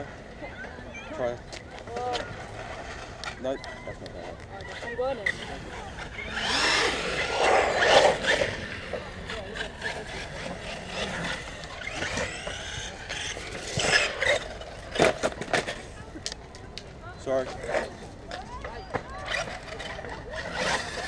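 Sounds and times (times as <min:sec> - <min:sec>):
tyre noise: 0:00.0 - 0:16.7
rc car electric motor whining: 0:04.6 - 0:16.0, 0:18.5 - 0:21.0.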